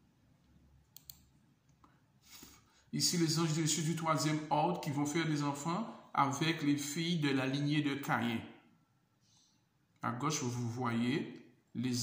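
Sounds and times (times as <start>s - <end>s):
computer mouse double click: 1.0s - 1.3s.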